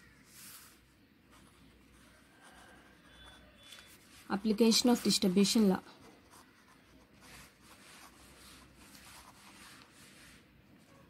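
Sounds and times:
marker pen scratching on paper: 0.3 - 11.0.

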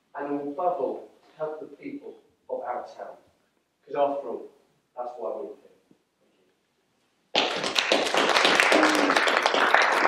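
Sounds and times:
crowd applauding: 7.3 - 10.0.

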